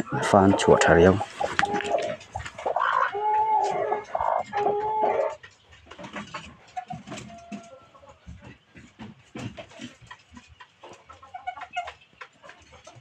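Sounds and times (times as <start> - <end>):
chickens calling: 0.0 - 13.0.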